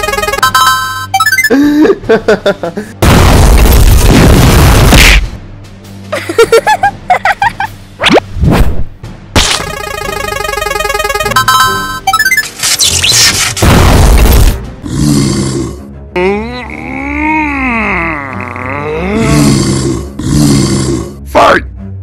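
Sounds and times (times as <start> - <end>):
background music: 0.0 - 22.0
rising blips: 9.5 - 13.2
drawn-out groaning voice: 14.9 - 21.2.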